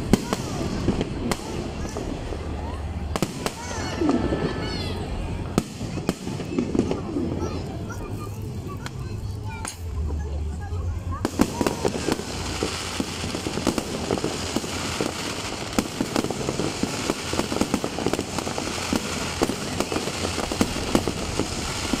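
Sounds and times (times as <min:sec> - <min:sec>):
fireworks bangs and crackles: 0:00.0 - 0:22.0.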